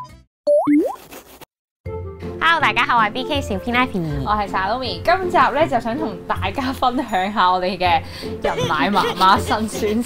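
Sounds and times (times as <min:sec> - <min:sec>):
cartoon upward gliding pops: 0:00.5 - 0:01.0.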